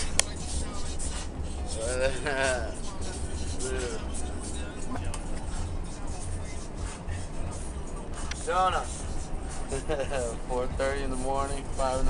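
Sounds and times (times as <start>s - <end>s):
bus rumble from inside: 0.0s - 12.0s.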